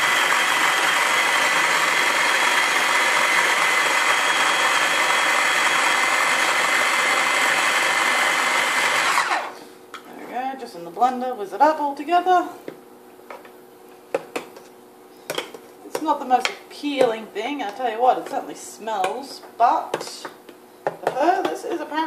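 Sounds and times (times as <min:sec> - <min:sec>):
food processor motor whining: 0:00.0 - 0:09.7.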